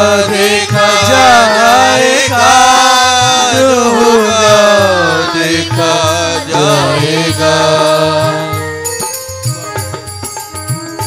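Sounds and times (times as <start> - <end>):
person singing devotional song: 0.0 - 9.9.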